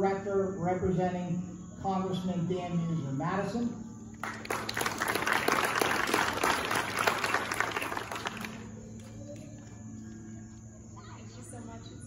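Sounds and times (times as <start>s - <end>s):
crowd applauding: 4.2s - 8.8s.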